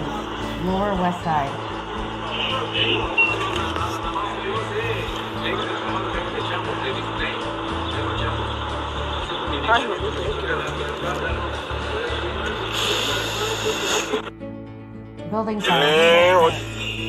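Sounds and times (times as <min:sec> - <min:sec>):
steady hum: 0:00.0 - 0:14.3
voices talking: 0:00.0 - 0:14.3, 0:15.3 - 0:17.0
music with heavy bass: 0:00.0 - 0:14.6, 0:15.5 - 0:17.0.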